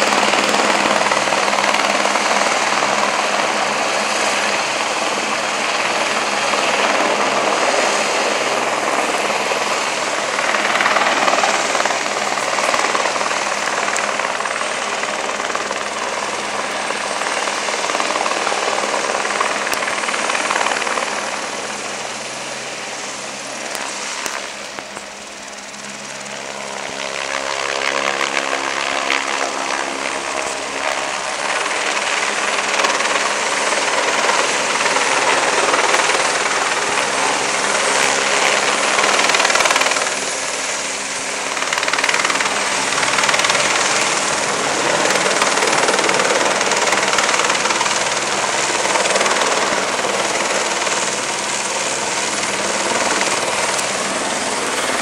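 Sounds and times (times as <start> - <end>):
helicopter rotor and turbine: 0.0 - 55.0.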